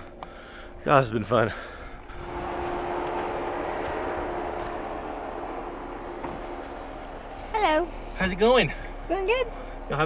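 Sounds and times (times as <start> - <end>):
off-road vehicle engine running: 2.1 - 10.0.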